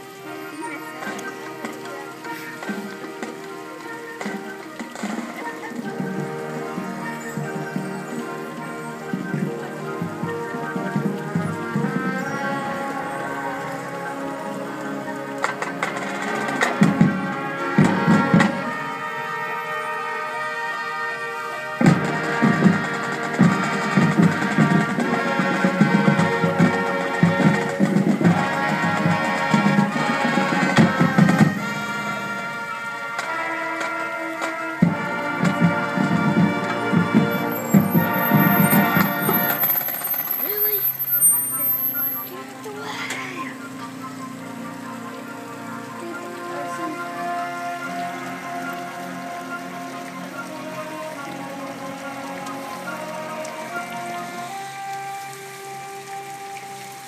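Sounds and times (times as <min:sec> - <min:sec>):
brass chords: 0:00.0 - 0:42.8, 0:43.5 - 0:57.0
steady drum beat: 0:04.1 - 0:13.1, 0:21.8 - 0:41.5.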